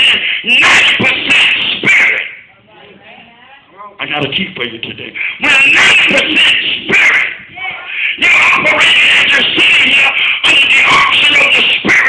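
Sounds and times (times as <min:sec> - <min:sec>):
man shouting through distorted speakers: 0:00.0 - 0:02.4, 0:05.2 - 0:12.0.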